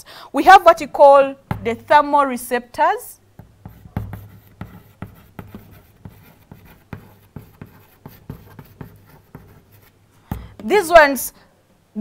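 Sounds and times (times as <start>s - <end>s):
chalk writing on a chalkboard: 3.4s - 10.7s.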